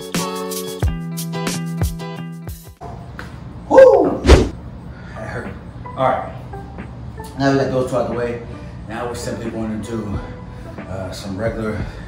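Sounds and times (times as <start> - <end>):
background music: 0.0 - 2.8, 5.2 - 12.0
heavy thud on floor: 4.2 - 4.5.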